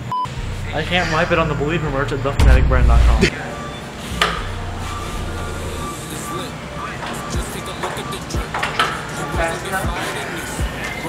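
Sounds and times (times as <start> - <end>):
low steady hum: 0.1 - 8.5.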